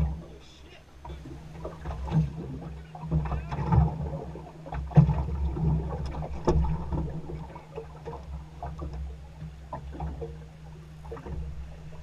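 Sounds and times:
low hum and rumble: 0.0 - 12.0
water knocking against boat hull: 1.1 - 9.1.

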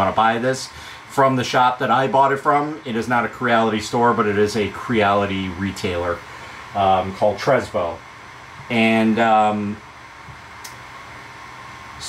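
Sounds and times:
steady background hiss: 0.0 - 12.0
faint click: 10.6 - 10.8.

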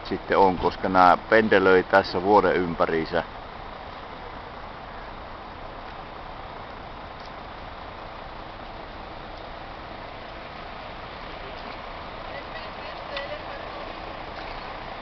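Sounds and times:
outdoor ambient noise: 0.0 - 15.0.

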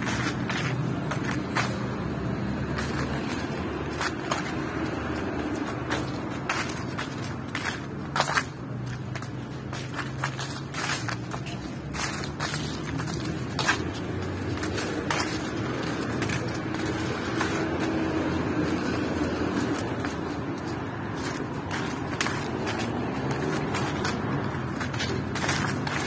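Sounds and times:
footsteps on leafy pavement: 0.0 - 26.0
traffic hum: 0.0 - 26.0.

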